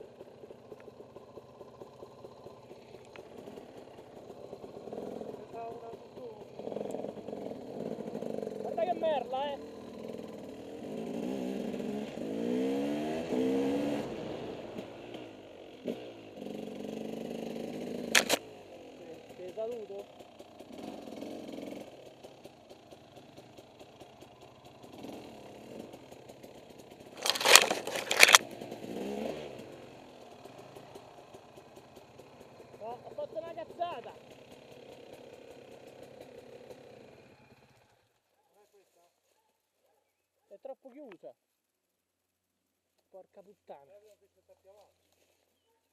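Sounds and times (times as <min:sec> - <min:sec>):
motorcycle engine accelerating: 0:00.0 - 0:38.1.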